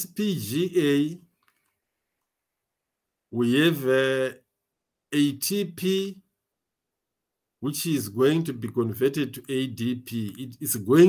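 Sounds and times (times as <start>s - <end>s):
man lecturing: 0.0s - 1.3s, 3.3s - 4.5s, 5.1s - 6.3s, 7.6s - 11.0s
faint click: 1.4s - 2.4s.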